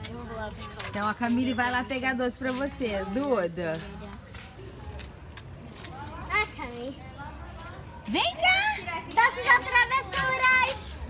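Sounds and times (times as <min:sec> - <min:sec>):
faint distant voices: 0:00.0 - 0:11.0
low street rumble: 0:00.0 - 0:11.0.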